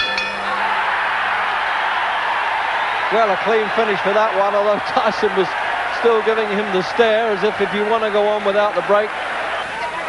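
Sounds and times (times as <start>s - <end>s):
boxing ring bell: 0.0s - 0.7s
crowd noise: 0.0s - 10.0s.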